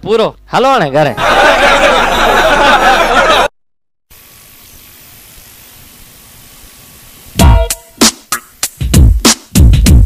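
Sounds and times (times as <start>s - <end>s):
faint outdoor ambience hiss: 4.1s - 9.6s.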